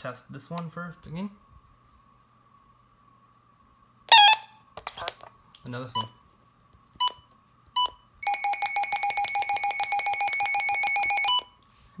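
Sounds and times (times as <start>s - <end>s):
rapidly pulsing alarm tone: 8.2s - 11.4s.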